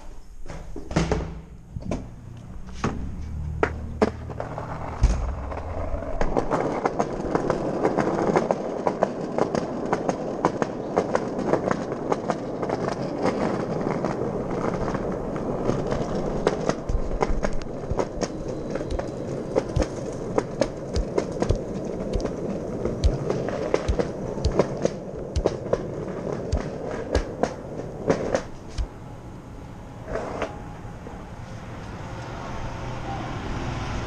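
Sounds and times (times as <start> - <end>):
skateboard wheels rolling on concrete: 0.0 - 34.0
wheels clicking over pavement cracks: 1.8 - 28.9
sharp knock: 5.0 - 5.7, 23.0 - 23.2.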